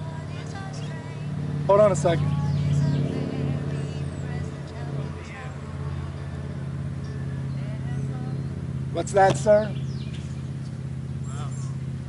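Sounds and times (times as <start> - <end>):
steady low drone: 0.0 - 12.0
distant man speaking: 8.9 - 9.8.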